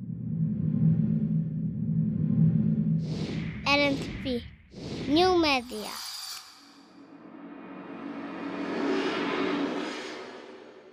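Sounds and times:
warbling processed voice phrases: 0:03.7 - 0:04.4, 0:05.1 - 0:06.0.

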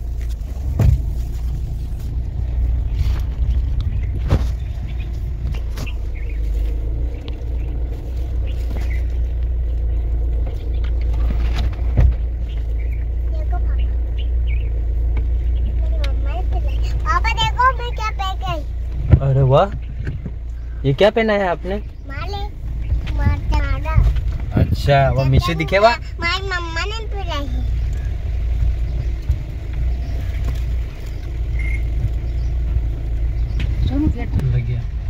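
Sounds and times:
car engine rumble in cabin: 0:00.0 - 0:35.0.

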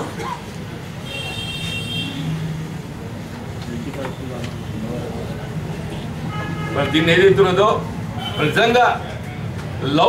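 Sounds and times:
road traffic rumble: 0:00.0 - 0:10.0.

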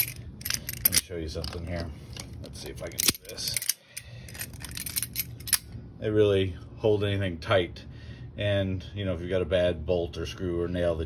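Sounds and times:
metal pliers clicks and scrapes: 0:00.0 - 0:05.7.

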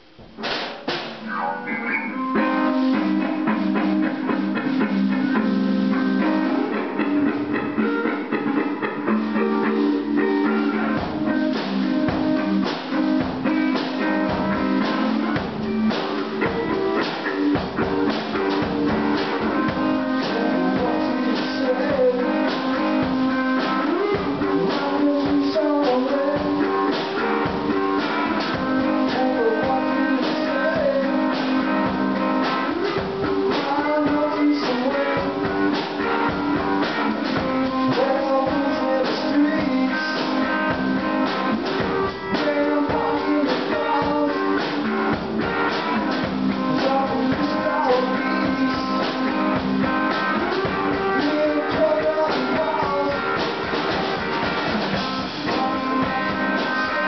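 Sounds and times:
drum kit: 0:00.0 - 0:57.0
electric guitar: 0:00.0 - 0:57.0.

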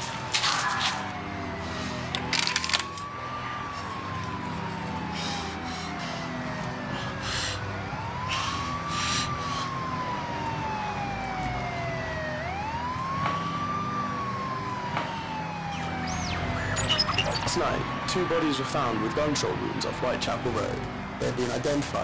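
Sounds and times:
emergency siren wailing: 0:00.0 - 0:22.0.

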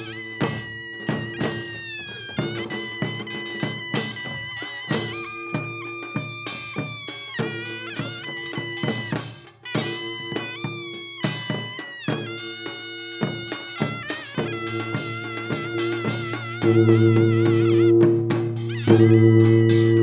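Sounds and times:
barrel drums beating: 0:00.0 - 0:20.0
shawm playing nasal melody: 0:00.0 - 0:20.0.

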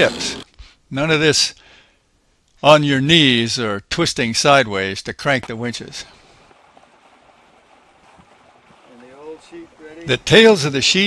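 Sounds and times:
wind and water hiss: 0:04.0 - 0:11.0.

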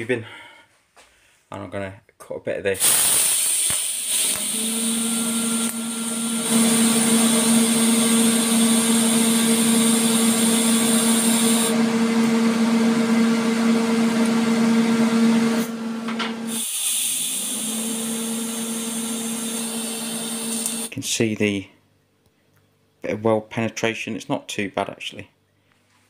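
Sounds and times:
welding arc hum and hiss: 0:02.8 - 0:11.8, 0:16.4 - 0:20.9.

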